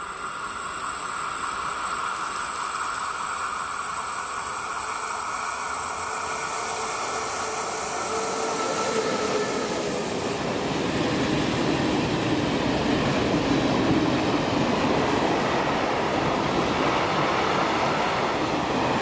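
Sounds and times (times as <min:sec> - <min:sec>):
electric locomotive passing: 0:00.0 - 0:19.0
wagon wheels rumbling on rail: 0:00.0 - 0:19.0.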